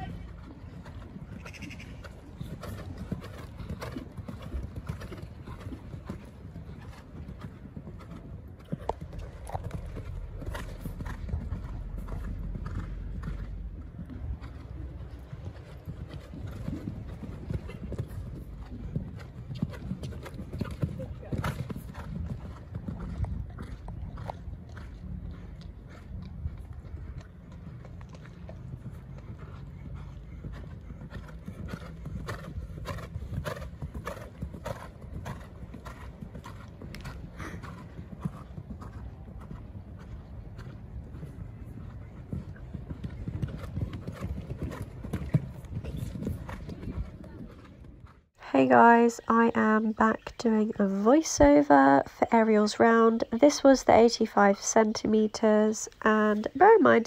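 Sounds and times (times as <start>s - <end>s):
horse hooves cantering on sand: 0.0s - 57.0s.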